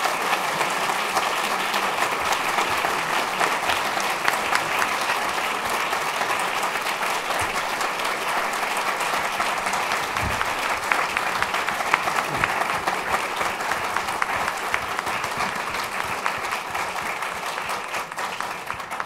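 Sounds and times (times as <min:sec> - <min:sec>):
audience applauding: 0:00.0 - 0:19.0.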